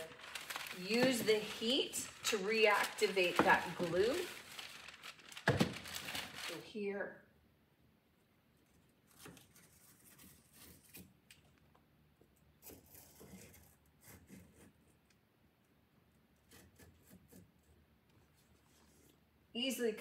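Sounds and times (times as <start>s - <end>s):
paper scratching and rustling on wood: 0.0s - 6.6s, 9.0s - 11.1s, 12.6s - 14.8s.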